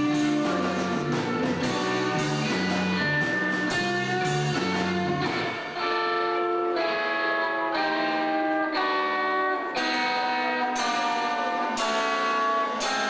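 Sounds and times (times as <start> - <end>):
low bass notes: 0.0 - 6.9
electric guitar chords: 0.0 - 13.0
rock band playing: 0.0 - 13.0.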